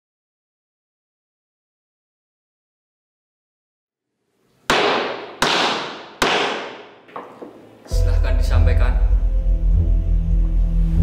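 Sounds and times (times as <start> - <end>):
wooden gavel knocking: 4.7 - 7.6.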